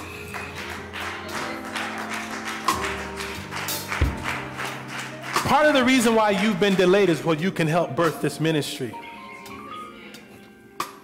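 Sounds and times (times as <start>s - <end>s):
keyboard chords: 0.0s - 11.0s.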